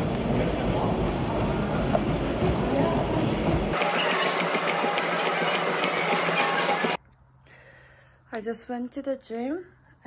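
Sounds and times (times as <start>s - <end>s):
treadmill motor and belt rumble: 3.5s - 7.0s.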